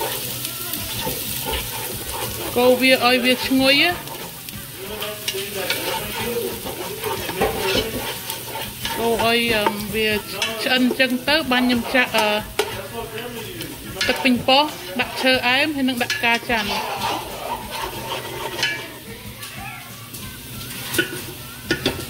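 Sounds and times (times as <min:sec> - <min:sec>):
wooden spoon stirring and scraping: 0:00.0 - 0:19.9, 0:20.5 - 0:22.0
aromatics sizzling in oil: 0:00.0 - 0:22.0
person talking: 0:08.9 - 0:17.2.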